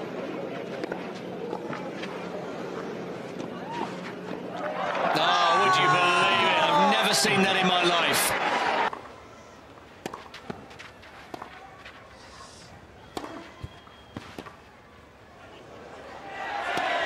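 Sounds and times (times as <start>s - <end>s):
crowd noise: 0.0s - 17.0s
tennis ball bouncing: 10.0s - 11.6s, 13.0s - 14.6s, 16.7s - 17.0s
tennis racket hitting ball: 10.0s - 11.6s, 13.1s - 14.6s, 16.7s - 17.0s.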